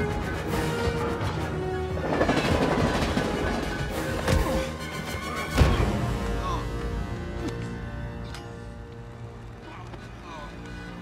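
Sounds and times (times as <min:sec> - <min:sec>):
orchestral score: 0:00.0 - 0:11.0.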